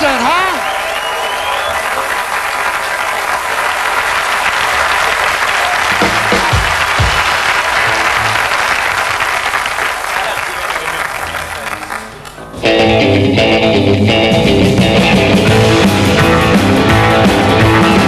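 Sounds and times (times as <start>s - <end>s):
studio audience applauding: 0.0s - 12.5s, 15.4s - 18.0s
rock band with electric guitars: 5.7s - 8.6s, 11.2s - 18.0s.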